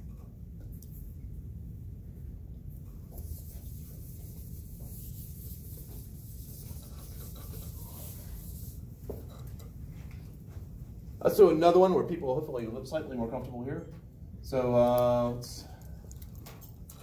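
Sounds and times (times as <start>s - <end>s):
marker writing on whiteboard: 3.0s - 9.4s.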